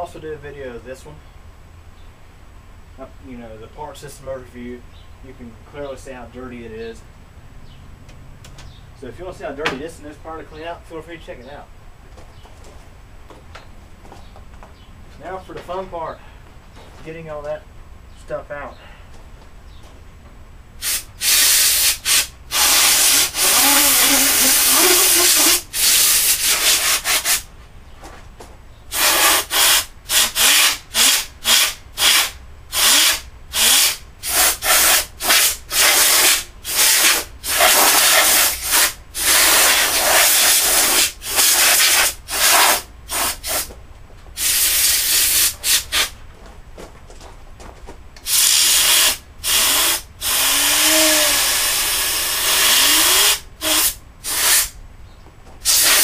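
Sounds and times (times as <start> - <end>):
compressed air blow gun bursts: 20.8 - 27.5, 28.9 - 43.7, 44.4 - 46.2, 48.2 - 54.8, 55.6 - 56.0.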